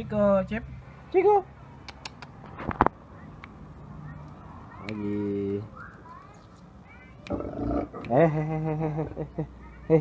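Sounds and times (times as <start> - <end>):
dog growling: 7.3 - 8.2.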